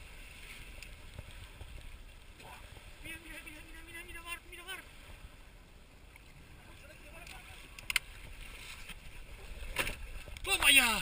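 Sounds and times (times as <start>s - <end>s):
faint wind: 0.0s - 11.0s
water noise: 0.0s - 11.0s.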